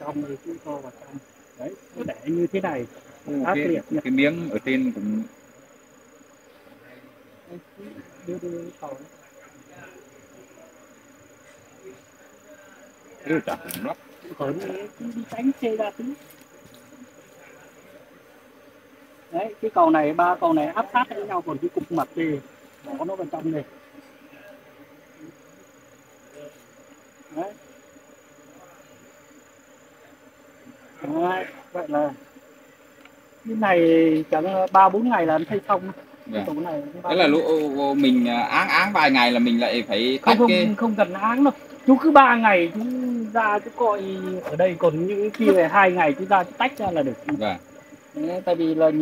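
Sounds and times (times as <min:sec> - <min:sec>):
honeybees buzzing: 0:00.0 - 0:49.0.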